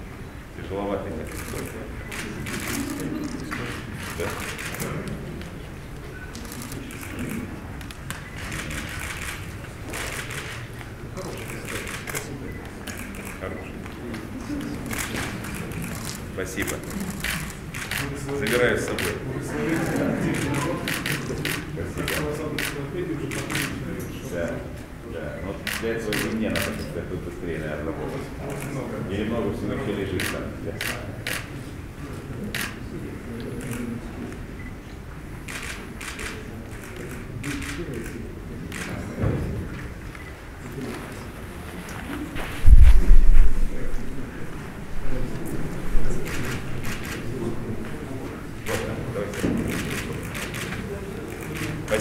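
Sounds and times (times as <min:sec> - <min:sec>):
murmur of voices: 0:00.0 - 0:52.0.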